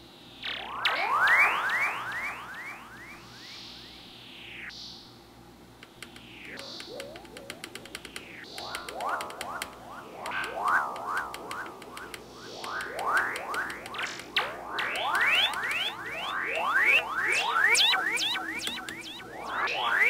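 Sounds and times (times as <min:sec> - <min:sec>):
synthesizer pitch swoops: 0:00.4 - 0:05.1, 0:06.2 - 0:20.0
fast ticking: 0:05.8 - 0:19.7.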